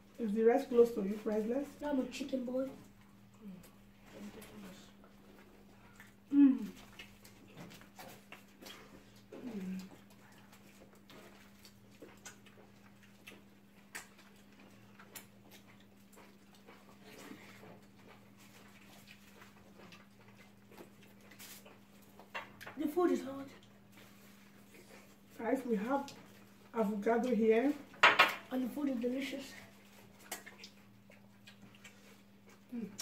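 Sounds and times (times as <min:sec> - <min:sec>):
eating clicks and smacks: 0:05.8 - 0:22.8, 0:29.8 - 0:33.0.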